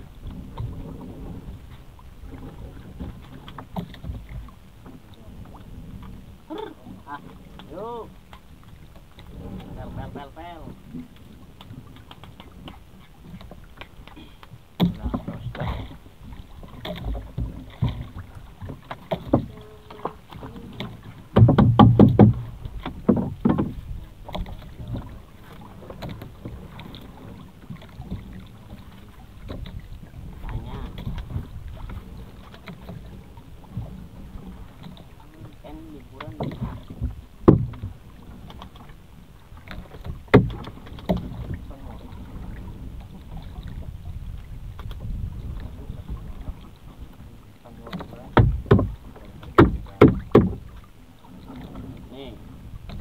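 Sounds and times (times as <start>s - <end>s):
water sloshing around hull: 0.0s - 53.0s
sharp knocks: 21.3s - 23.8s, 37.4s - 37.8s, 40.3s - 40.7s, 48.4s - 50.6s.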